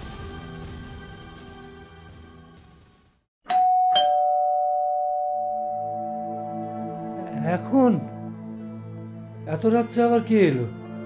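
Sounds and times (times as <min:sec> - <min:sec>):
two-note doorbell chime: 0:03.5 - 0:08.5.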